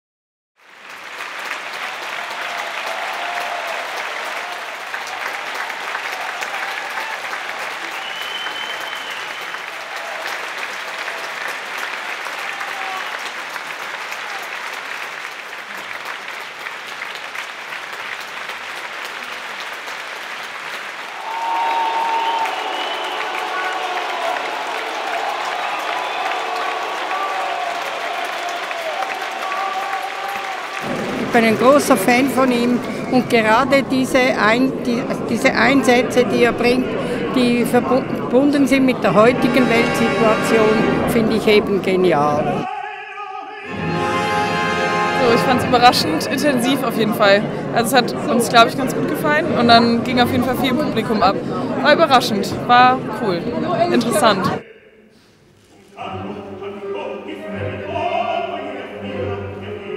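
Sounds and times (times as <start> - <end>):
audience applauding: 0.6 - 42.8, 43.7 - 54.6
voices shouting: 21.2 - 30.7.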